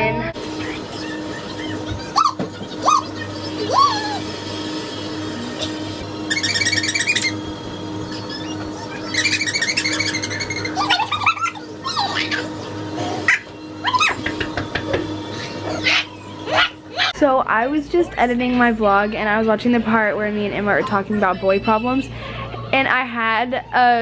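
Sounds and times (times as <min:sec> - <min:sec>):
small dog squeaky cries: 0:06.3 - 0:07.4, 0:08.4 - 0:12.5
squeaky toy squeaking: 0:06.3 - 0:07.4, 0:09.1 - 0:11.0.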